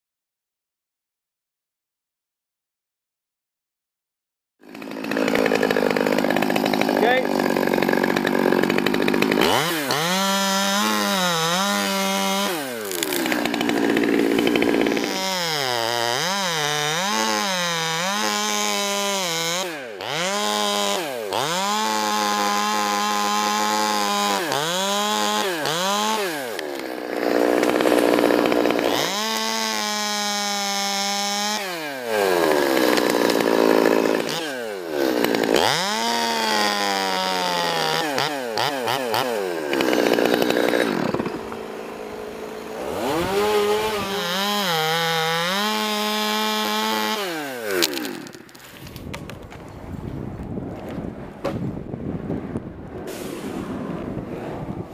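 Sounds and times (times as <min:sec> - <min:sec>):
chainsaw cutting wood: 0:04.6 - 0:49.8.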